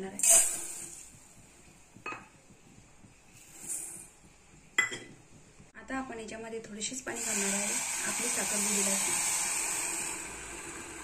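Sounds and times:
water pouring into a steel pot: 7.2 - 11.0.

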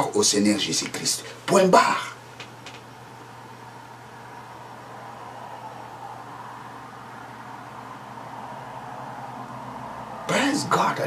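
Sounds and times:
low hum: 2.8 - 10.3.

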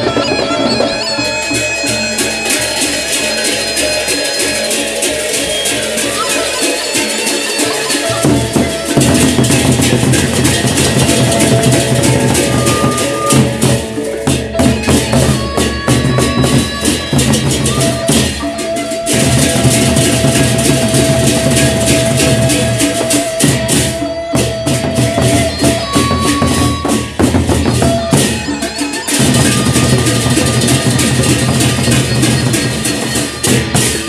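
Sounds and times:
metal percussion: 0.0 - 34.0.

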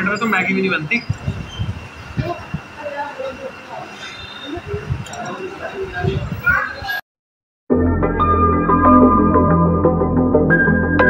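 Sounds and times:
indistinct background voices: 0.0 - 7.0.

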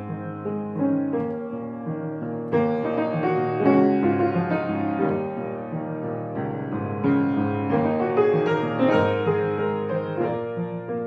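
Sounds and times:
solo piano improvisation: 0.0 - 11.0.

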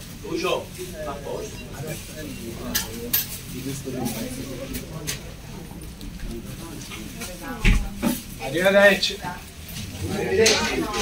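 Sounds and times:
dishes or cutlery clinking: 2.4 - 3.5.

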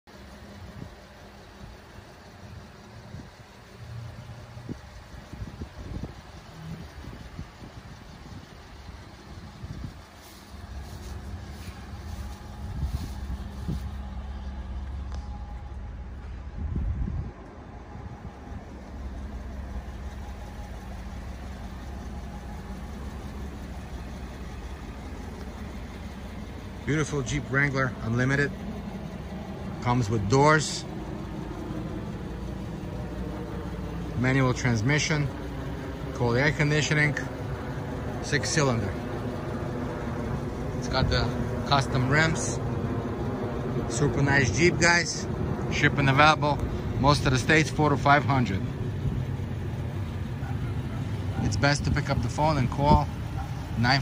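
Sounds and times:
vehicle engine idling: 0.0 - 54.0
low rumble: 0.3 - 54.0.

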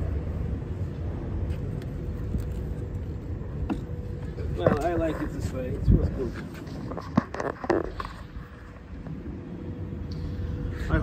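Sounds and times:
faint steady hum: 0.0 - 11.0
outdoor background rumble: 0.0 - 11.0.

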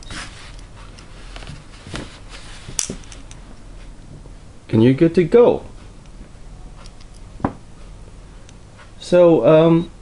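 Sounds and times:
eyeglass parts clicking and rubbing: 6.8 - 7.5.

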